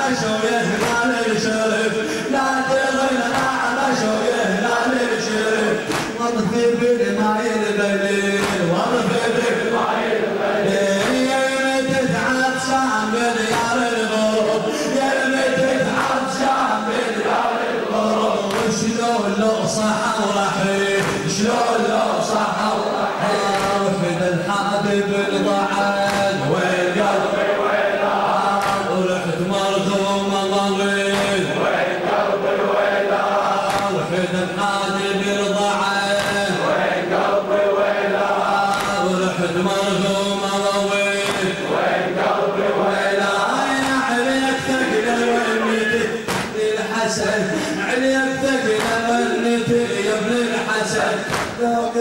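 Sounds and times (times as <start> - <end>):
man chanting a lament: 0.0 - 52.0.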